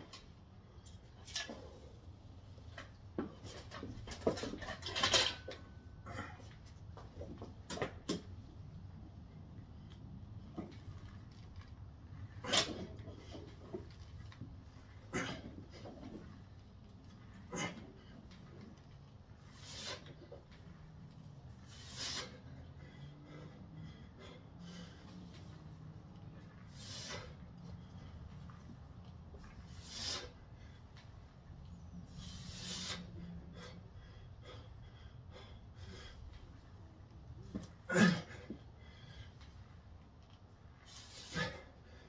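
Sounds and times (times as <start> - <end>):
man exhaling sharply: 26.7 - 27.4.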